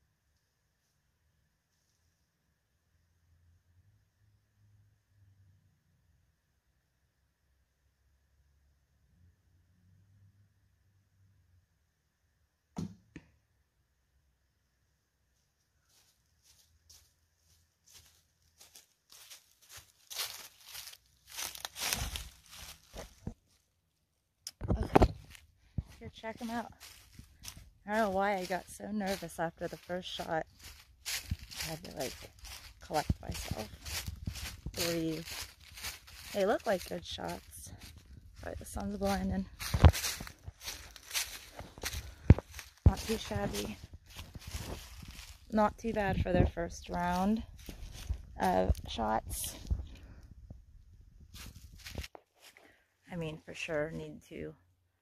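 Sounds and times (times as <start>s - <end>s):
footsteps crunching dry leaves: 15.9s - 23.6s, 25.1s - 49.9s, 51.3s - 52.6s.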